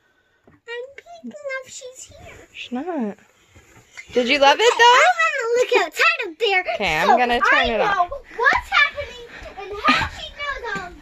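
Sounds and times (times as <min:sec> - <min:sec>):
young child speaking: 0:00.7 - 0:02.5, 0:05.0 - 0:11.0.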